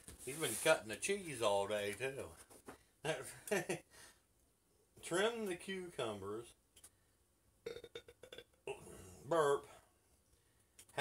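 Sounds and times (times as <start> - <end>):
man burping: 7.6 - 9.4.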